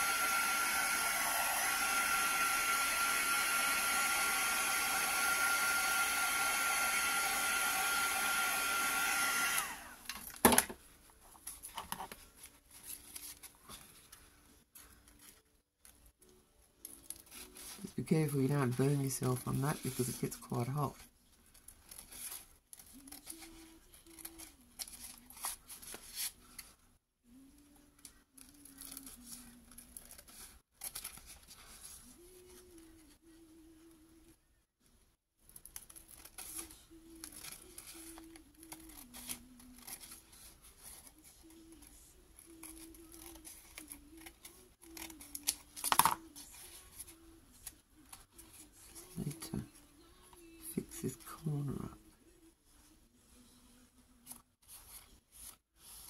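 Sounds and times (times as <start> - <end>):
tissue paper rustling: 10.9 - 16.1, 16.8 - 26.8, 35.4 - 49.8, 52.3 - 56.0
scissors snipping paper: 21.9 - 26.7, 35.6 - 48.1.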